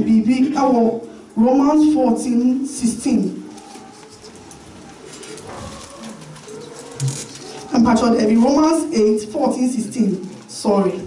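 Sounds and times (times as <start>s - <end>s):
dove cooing: 3.4s - 7.8s.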